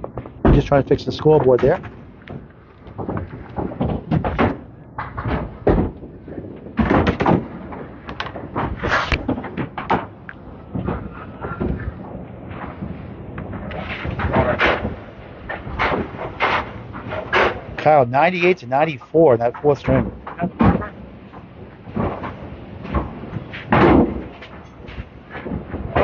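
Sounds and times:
bowling balls knocking pins: 0:00.0 - 0:18.0, 0:19.4 - 0:26.0
pin machinery working: 0:00.5 - 0:26.0.

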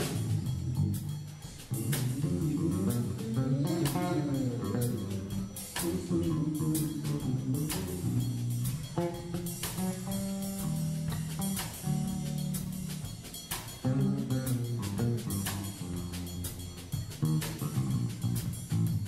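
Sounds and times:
drum kit with cymbals: 0:00.0 - 0:19.0
electric bass: 0:00.0 - 0:19.0
electric guitar: 0:01.7 - 0:13.1.

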